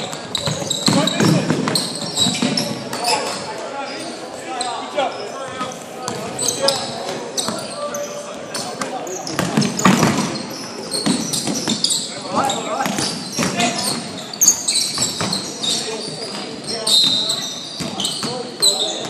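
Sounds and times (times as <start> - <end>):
sneaker squeaks: 0.0 - 19.0.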